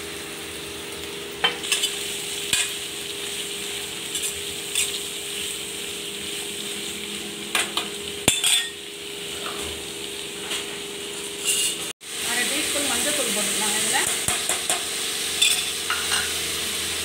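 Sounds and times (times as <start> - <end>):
vegetables sizzling in a pan: 0.0 - 17.0
spoon knocking and scraping pan: 14.0 - 16.4.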